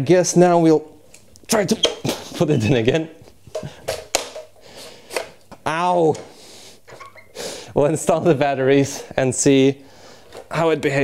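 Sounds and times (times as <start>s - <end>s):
man laughing: 1.7s - 3.0s.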